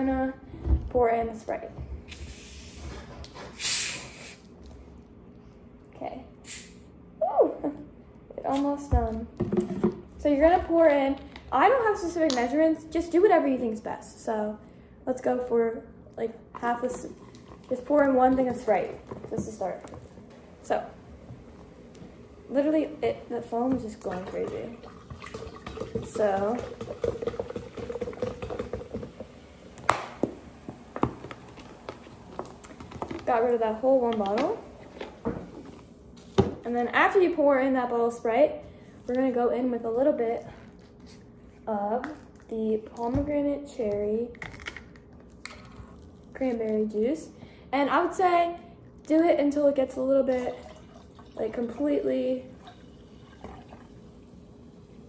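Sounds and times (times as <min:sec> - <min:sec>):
carbonation hissing from bottle: 0:02.1 - 0:04.4
soda pouring into plastic pitcher: 0:24.0 - 0:29.4, 0:50.4 - 0:54.2
soda fizzing and crackling: 0:24.0 - 0:29.8.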